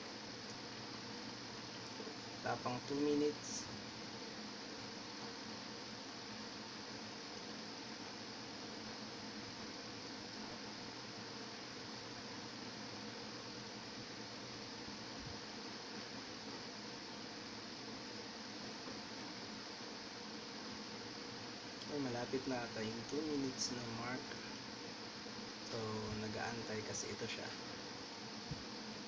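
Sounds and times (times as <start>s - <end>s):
faint low hum: 0.0s - 29.0s
steady background hiss: 0.0s - 29.0s.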